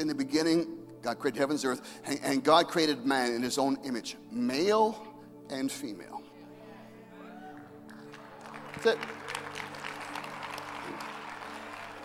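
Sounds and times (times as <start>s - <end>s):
soft background music: 0.0s - 12.0s
congregation applauding: 7.4s - 12.0s.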